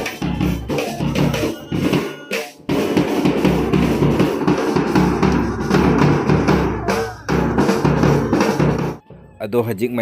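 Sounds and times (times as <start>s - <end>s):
snare drum beat: 0.0s - 9.0s
horn playing tune: 4.8s - 9.3s.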